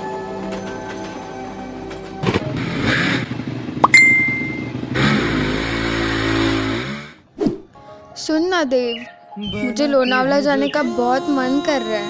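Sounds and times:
motorcycle engine revving: 2.2 - 7.4.

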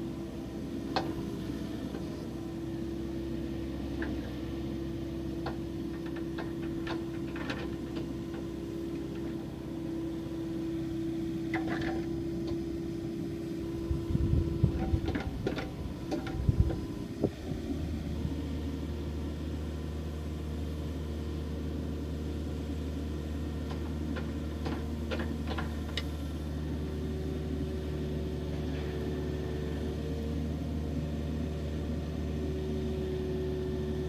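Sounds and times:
mini excavator engine and hydraulics: 0.0 - 34.0.

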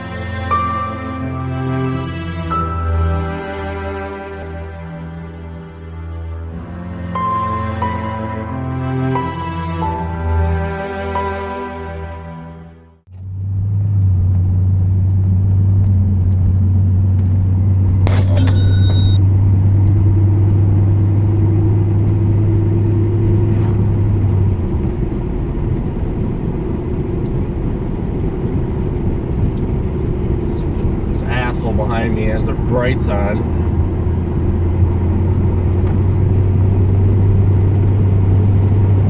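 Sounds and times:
car engine and tyre noise: 0.0 - 11.8, 13.1 - 39.0
deep steady drone: 0.0 - 11.9, 13.1 - 39.0
brief high-pitched tone: 18.1 - 19.2.

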